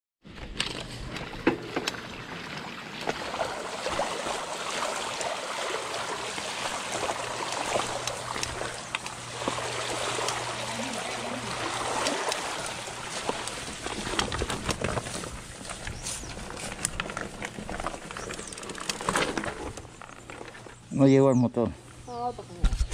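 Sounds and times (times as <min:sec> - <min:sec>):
steady low hum: 0:00.3 - 0:22.9
bike tyres splashing through mud: 0:01.0 - 0:15.5
bike clicks and knocks: 0:14.0 - 0:20.7.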